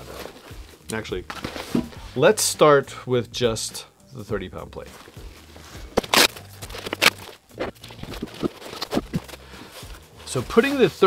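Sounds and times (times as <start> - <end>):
fabric rustling: 0.0 - 2.2, 4.9 - 11.0.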